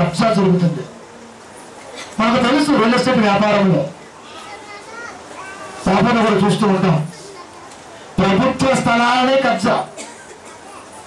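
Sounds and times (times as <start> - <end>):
man speaking: 0.0 - 0.9, 2.2 - 4.0, 5.8 - 7.2, 8.2 - 10.0
faint children's voices: 3.9 - 8.7, 9.9 - 11.0.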